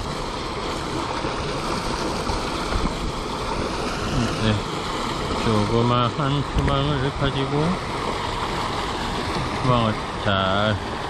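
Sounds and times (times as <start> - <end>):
water rushing from pipe: 0.0 - 11.0.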